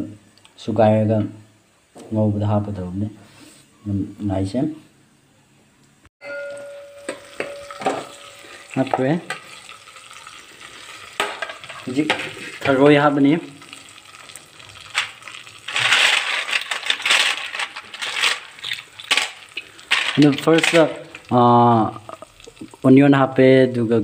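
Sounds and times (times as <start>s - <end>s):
food sizzling in hot oil: 7.0s - 23.4s
person speaking: 11.8s - 13.7s, 20.1s - 24.0s.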